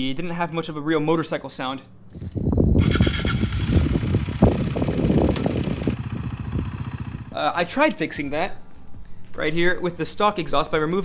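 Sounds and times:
motorcycle engine running: 2.8s - 7.7s.

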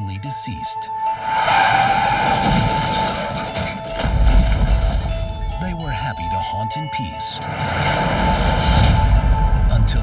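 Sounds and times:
car tires squealing: 1.0s - 4.6s
car crashing through wood: 1.2s - 5.6s.

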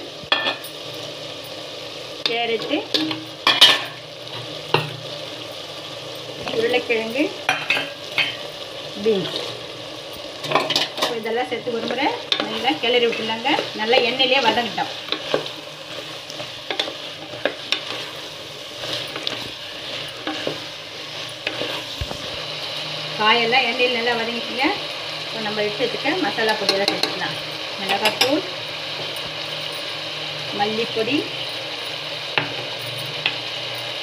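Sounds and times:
vegetables sizzling in oil: 0.0s - 34.0s
spatula scraping pot: 11.7s - 22.8s.

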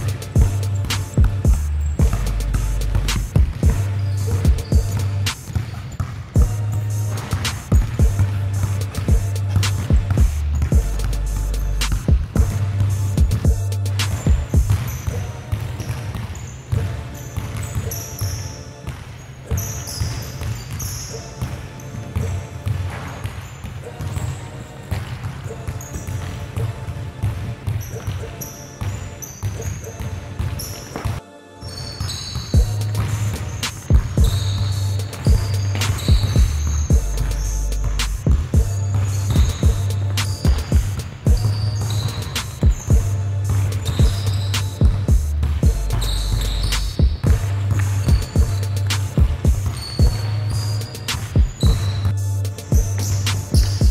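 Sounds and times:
music with heavy bass line: 0.0s - 5.4s, 6.4s - 14.8s, 32.6s - 41.5s, 42.6s - 53.9s
basketballs dribbling on hard floor: 0.0s - 31.2s, 31.8s - 53.9s.

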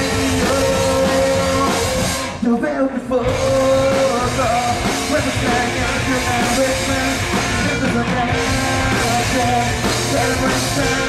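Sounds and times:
drum kit: 0.0s - 2.5s, 3.2s - 11.0s
distorted guitars: 0.0s - 11.0s.

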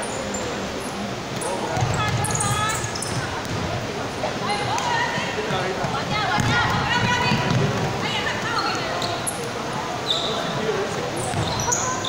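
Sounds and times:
sneakers squeaking on court floor: 1.4s - 3.6s, 8.5s - 10.6s, 11.2s - 12.0s
basketball bouncing: 5.8s - 8.0s.

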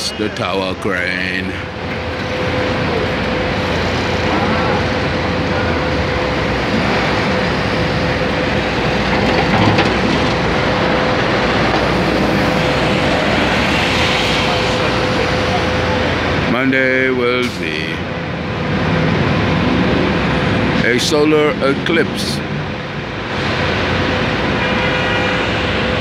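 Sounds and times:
city traffic: 0.0s - 26.0s
construction machinery: 0.0s - 26.0s
steady pitched hum: 0.0s - 26.0s.

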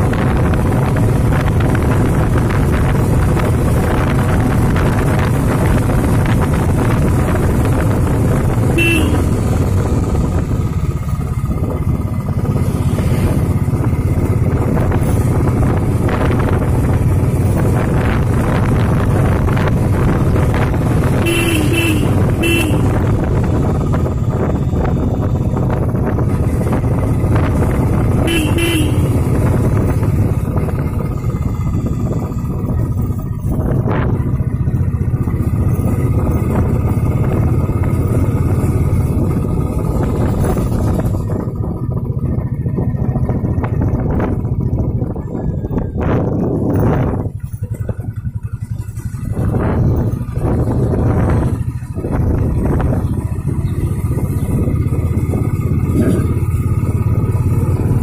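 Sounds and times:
road and wind noise: 0.0s - 58.0s
vehicle engine droning: 0.0s - 58.0s.

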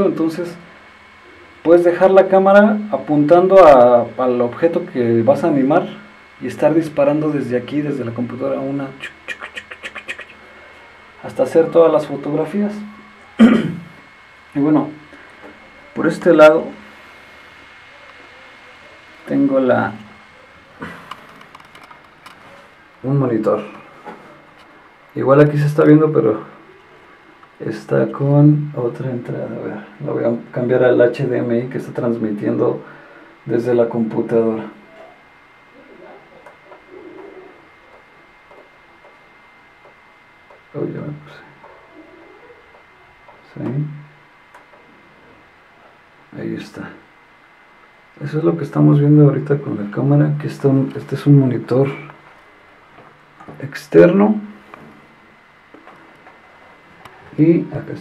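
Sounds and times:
faint steady high whine: 0.0s - 58.0s
faint bird cooing: 0.6s - 1.6s, 8.6s - 23.0s, 23.6s - 25.1s, 26.4s - 27.6s, 32.9s - 33.5s, 34.6s - 46.2s.

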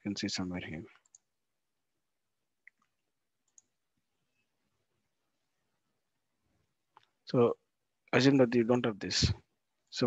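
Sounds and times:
faint computer mouse clicks: 2.6s - 3.8s.

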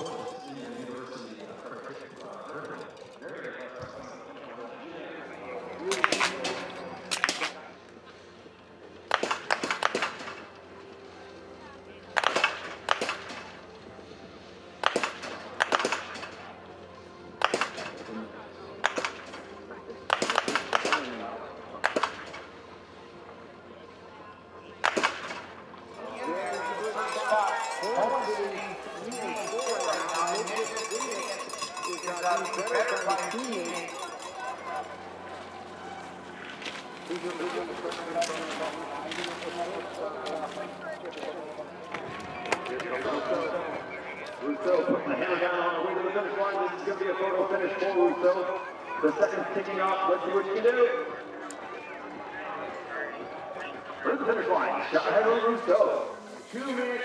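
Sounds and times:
hubbub of voices: 0.0s - 57.0s
rifle shots: 9.1s - 10.5s, 12.2s - 13.6s, 14.8s - 16.5s, 17.4s - 18.1s, 18.8s - 19.4s, 20.1s - 21.2s, 21.8s - 22.5s, 24.8s - 25.5s.

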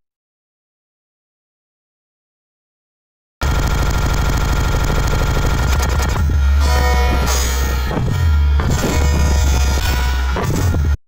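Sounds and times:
harsh distorted noise music: 3.4s - 11.0s.

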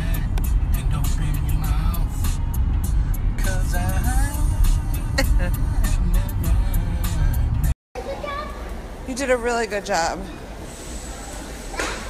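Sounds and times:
music: 0.0s - 7.7s.

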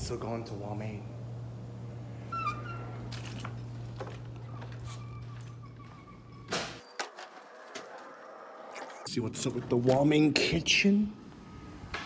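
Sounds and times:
steady low hum: 0.0s - 6.4s
door squeaking: 2.2s - 3.2s, 4.1s - 8.1s.

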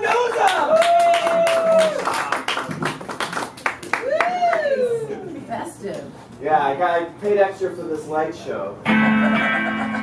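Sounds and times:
audience clapping: 0.0s - 4.7s.

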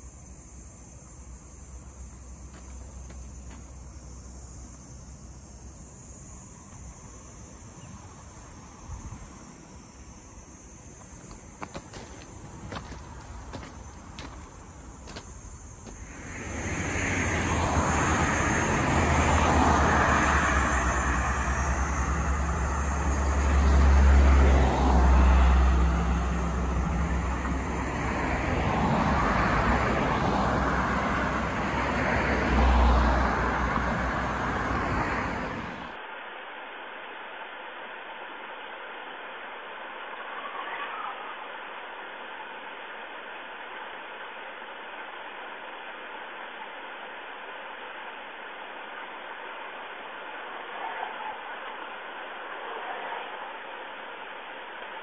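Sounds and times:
muffled steady noise: 0.0s - 55.0s
cars driving past: 11.9s - 36.0s.

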